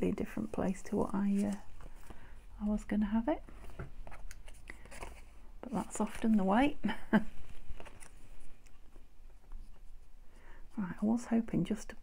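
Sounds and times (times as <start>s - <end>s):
person talking: 0.0s - 1.7s, 5.6s - 7.0s
breath: 1.9s - 2.5s, 10.2s - 10.8s.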